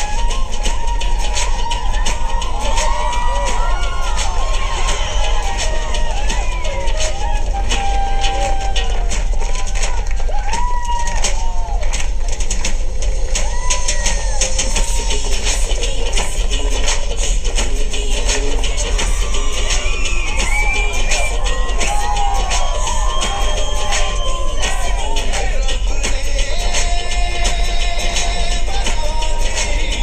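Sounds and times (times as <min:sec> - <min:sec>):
fast drum beat: 0:00.0 - 0:30.0
film song with singing: 0:00.0 - 0:30.0.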